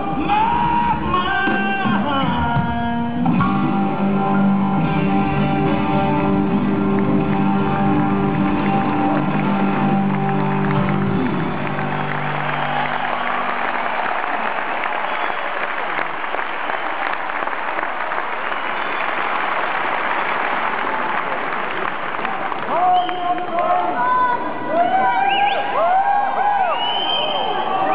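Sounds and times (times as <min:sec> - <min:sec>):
crowd applauding and cheering: 0:04.6 - 0:27.9.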